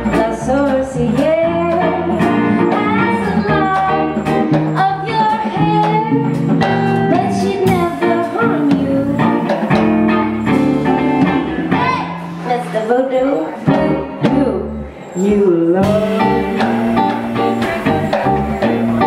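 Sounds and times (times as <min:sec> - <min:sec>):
woman singing: 0:00.0 - 0:10.5, 0:11.7 - 0:17.4
drum kit: 0:00.0 - 0:12.9, 0:15.3 - 0:19.0
electric bass: 0:00.0 - 0:12.9, 0:13.6 - 0:15.0, 0:15.7 - 0:19.0
electric guitar: 0:00.0 - 0:19.0.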